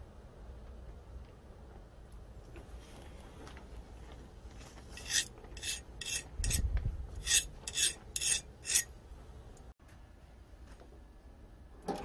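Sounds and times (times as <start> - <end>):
file scraping knife blade: 4.9 - 8.9.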